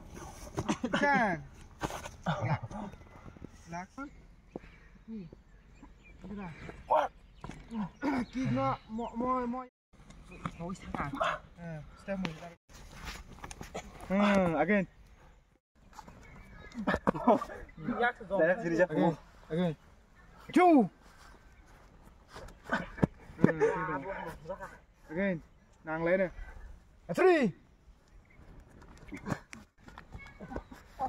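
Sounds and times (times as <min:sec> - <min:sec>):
outdoor background noise: 0:00.0 - 0:31.0.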